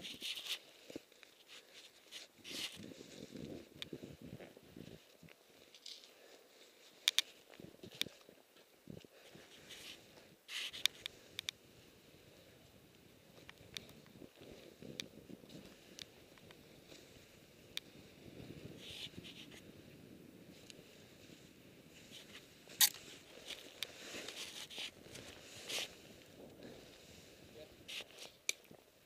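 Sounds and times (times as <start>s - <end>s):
low rush over snow: 0.1s - 29.0s.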